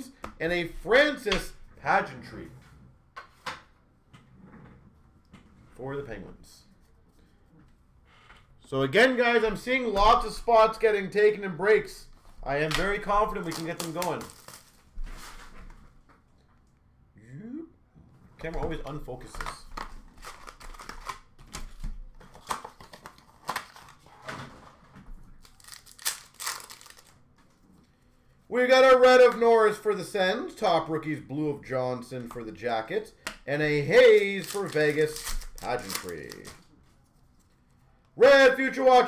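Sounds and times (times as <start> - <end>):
packs rustling: 12.8 - 15.5, 25.4 - 27.1, 34.0 - 36.7.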